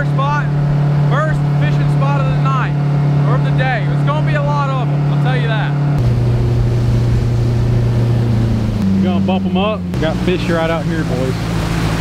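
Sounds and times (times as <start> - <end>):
outboard motor humming: 0.0 - 12.0
water rushing: 0.0 - 12.0
wind: 0.0 - 12.0.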